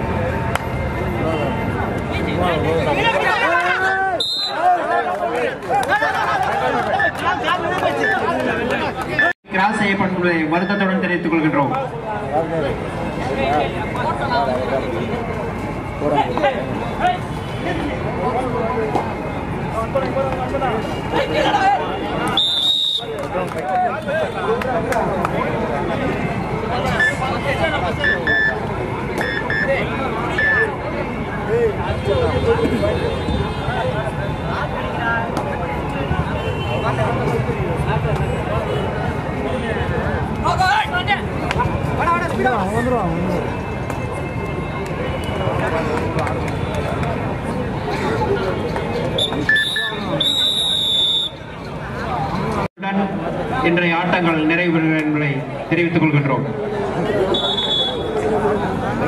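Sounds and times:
crowd noise and voices: 0:00.0 - 0:59.0
players and crowd shouting: 0:02.4 - 0:09.3
referee's whistle: 0:04.1 - 0:04.7, 0:22.3 - 0:23.1, 0:28.0 - 0:28.6, 0:29.2 - 0:29.7, 0:49.2 - 0:51.4, 0:57.3 - 0:58.2.

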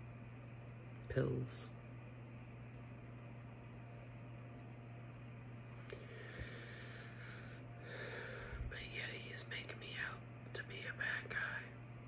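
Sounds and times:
woman whispering: 0:08.7 - 0:11.8.

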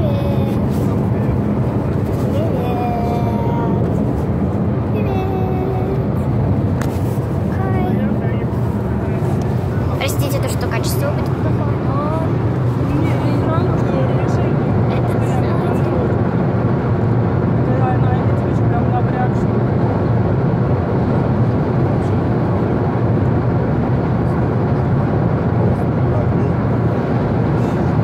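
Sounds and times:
child's voice: 0:00.0 - 0:00.8, 0:02.3 - 0:03.9, 0:04.9 - 0:06.2, 0:07.5 - 0:08.2
road and engine rumble: 0:00.0 - 0:28.0.

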